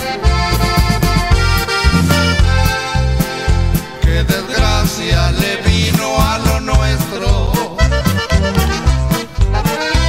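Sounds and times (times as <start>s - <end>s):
accordion melody: 0.0s - 10.0s
bass line: 0.0s - 10.0s
steady beat: 0.0s - 10.0s.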